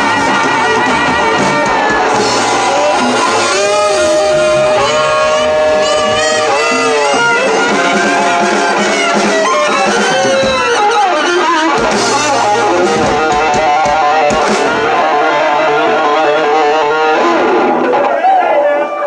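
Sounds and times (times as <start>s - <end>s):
saxophone: 0.0s - 17.5s
upright bass: 0.0s - 17.7s
drums: 0.0s - 19.0s
electric guitar: 0.0s - 19.0s.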